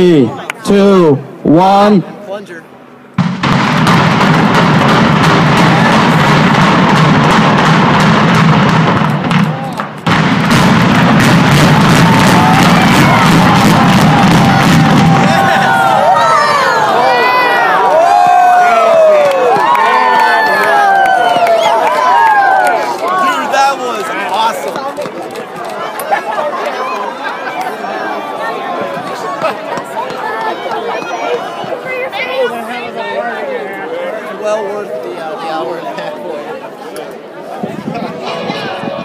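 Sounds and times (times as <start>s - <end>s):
crowd cheering and whooping: 11.5s - 23.7s.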